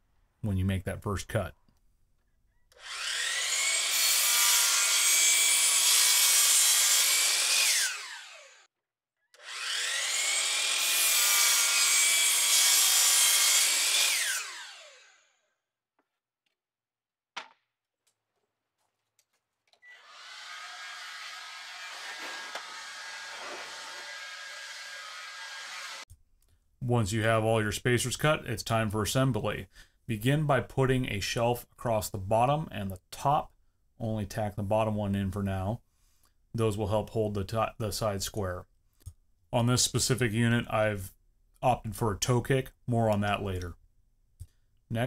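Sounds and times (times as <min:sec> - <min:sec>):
miter saw motor whine: 0:02.8 - 0:06.0, 0:07.0 - 0:08.7, 0:09.4 - 0:15.3, 0:19.8 - 0:26.0
saw cutting through board: 0:02.8 - 0:08.7, 0:09.4 - 0:15.3, 0:19.8 - 0:26.1.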